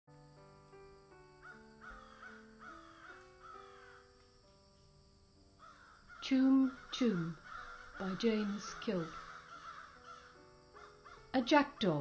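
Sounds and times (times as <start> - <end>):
soft music with held notes: 0.1 - 12.0
crows cawing: 1.4 - 4.2, 5.6 - 11.3.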